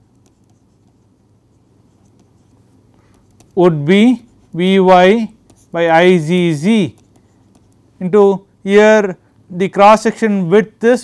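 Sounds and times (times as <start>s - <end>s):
stylus scratching on pen tablet: 0.0s - 7.8s
low steady hum: 0.0s - 11.0s.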